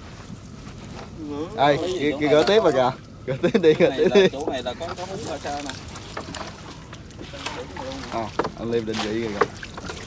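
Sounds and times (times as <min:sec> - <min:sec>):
small water splashes: 0:04.9 - 0:10.0.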